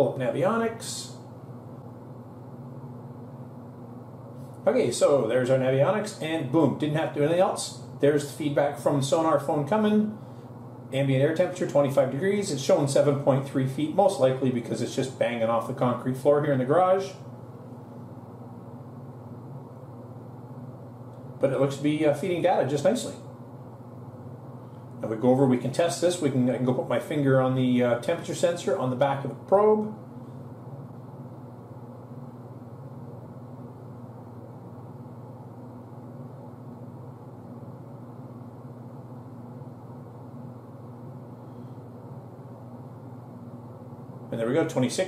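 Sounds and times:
low room hum: 0.0 - 45.0.

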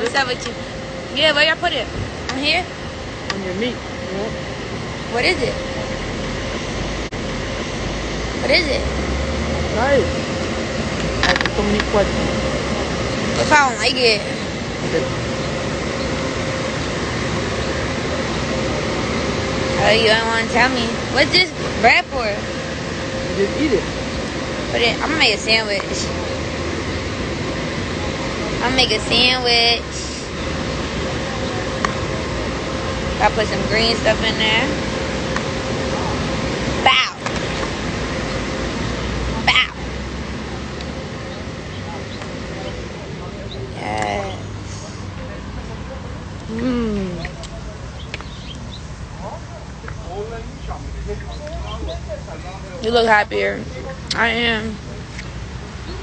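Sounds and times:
faint steady hum: 0.0 - 56.0
outdoor background noise: 0.0 - 56.0
street traffic background noise: 0.0 - 56.0.

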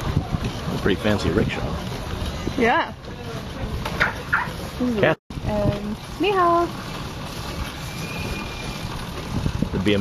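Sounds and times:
wind on microphone: 0.0 - 2.8, 8.1 - 10.0
rickshaw ride noise: 0.0 - 10.0.

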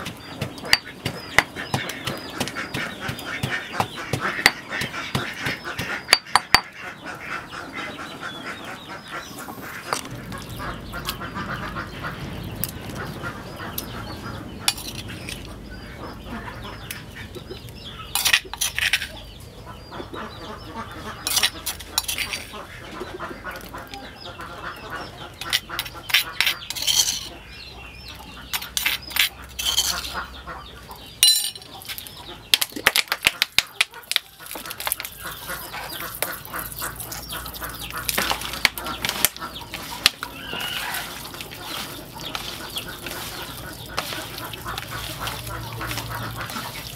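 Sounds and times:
chickens clucking: 0.0 - 46.9
meat mixed in plastic bowl: 31.8 - 46.9.

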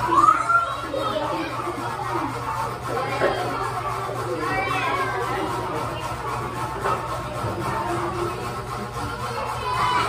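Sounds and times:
child's high voice: 0.0 - 2.3, 4.3 - 5.5, 9.1 - 10.0
children chattering and calling out: 0.0 - 10.0.

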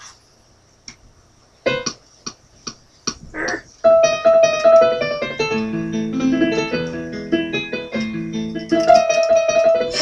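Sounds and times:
electronic keyboard notes: 3.8 - 10.0
tap on keyboard keys: 4.1 - 5.1, 7.9 - 10.0.

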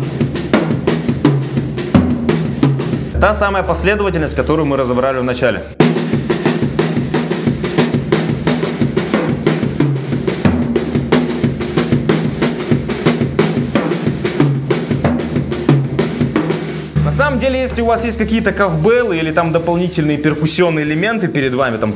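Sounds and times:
drum kit fast groove: 0.0 - 21.8.

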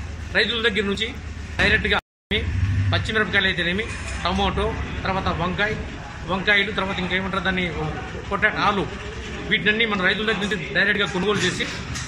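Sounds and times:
low hum: 1.2 - 4.1.

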